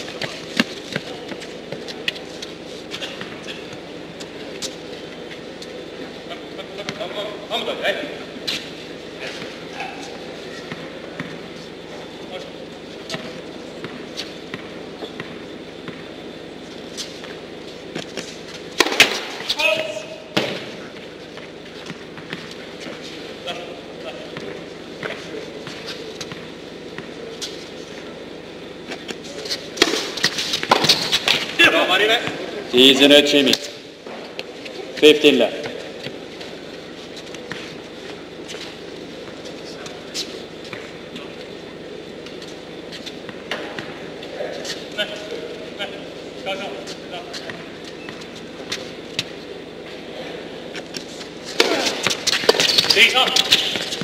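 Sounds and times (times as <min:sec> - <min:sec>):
tennis ball bouncing on court: 0:18.8 - 0:19.4
tennis serve struck: 0:18.8 - 0:19.4
low voices: 0:31.4 - 0:54.0.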